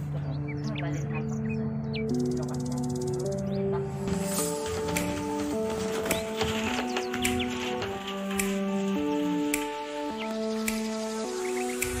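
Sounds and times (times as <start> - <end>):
chirp-like glide: 0.0 - 9.4, 10.0 - 12.0
held chord background music: 0.0 - 12.0.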